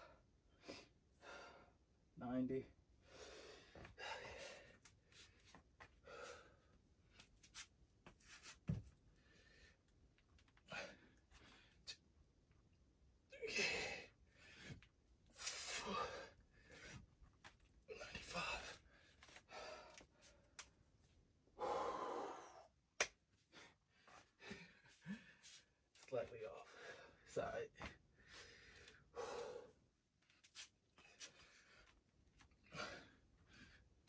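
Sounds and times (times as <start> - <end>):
man breathing hard: 0.0 - 1.8, 3.0 - 6.8, 13.4 - 17.1, 17.9 - 20.5, 21.6 - 22.8, 26.6 - 29.8, 32.6 - 34.0.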